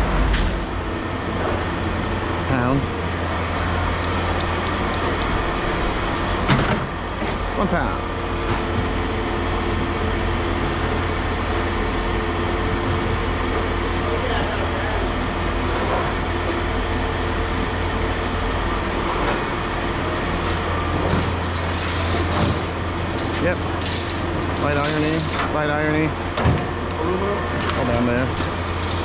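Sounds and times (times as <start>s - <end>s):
low machine drone: 0.0s - 29.0s.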